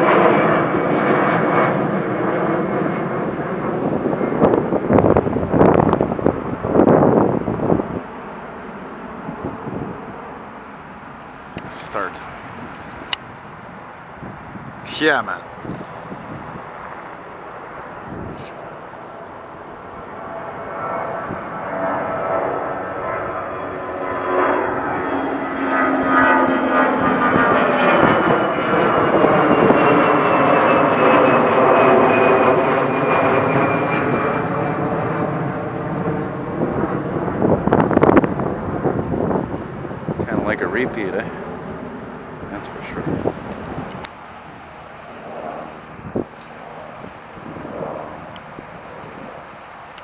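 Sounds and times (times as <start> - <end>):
jet airliner passing overhead: 0.0 - 50.0.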